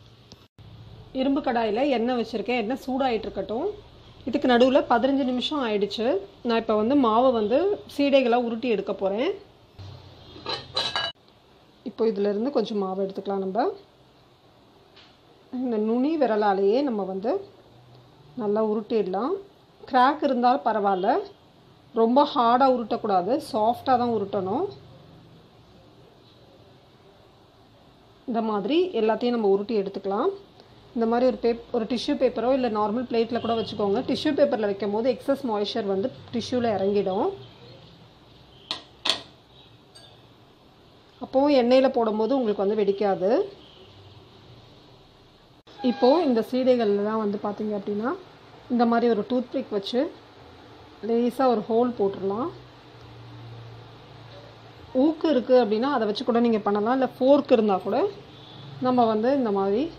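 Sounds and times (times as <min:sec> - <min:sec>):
glass bowl clinking: 0:10.4 - 0:11.2, 0:39.9 - 0:40.3.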